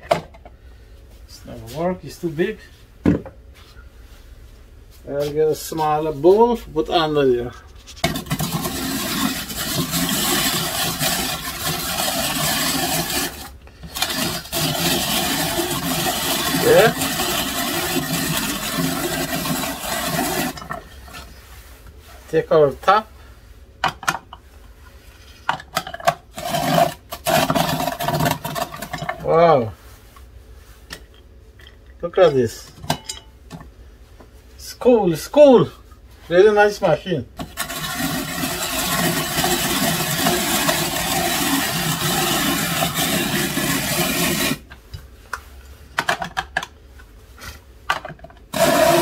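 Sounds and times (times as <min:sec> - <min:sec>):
grater scraping carrot: 0:07.6 - 0:21.4, 0:26.3 - 0:29.2, 0:37.4 - 0:44.7, 0:48.5 - 0:49.0.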